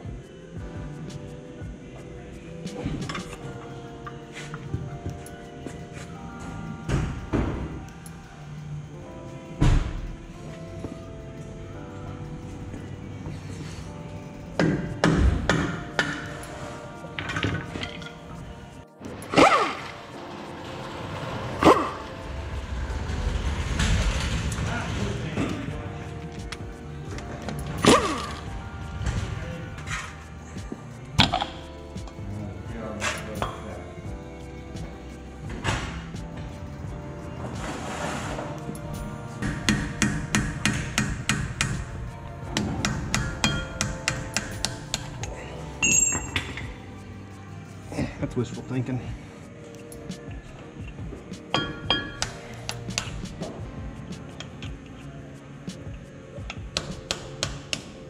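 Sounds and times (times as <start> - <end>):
background music: 0.0 - 58.0
hammer striking metal wheel hub: 39.4 - 41.9, 42.5 - 45.2, 51.5 - 53.1.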